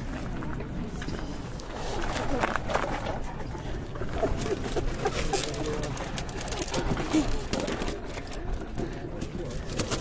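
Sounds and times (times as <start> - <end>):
outdoor hubbub: 0.0 - 10.0.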